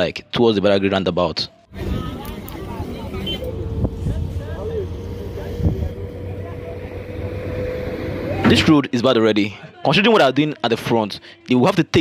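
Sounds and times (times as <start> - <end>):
vehicles passing: 1.7 - 9.1.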